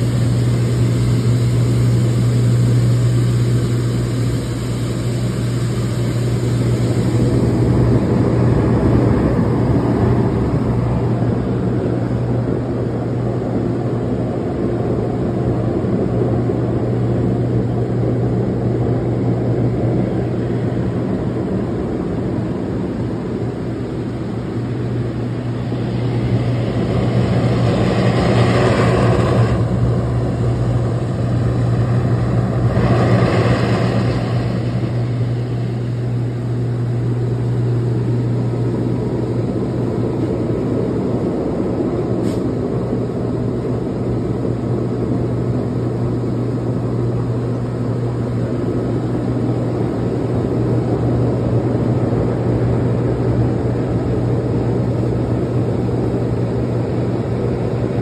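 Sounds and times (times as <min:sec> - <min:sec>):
pump hum: 0:00.0 - 0:58.0.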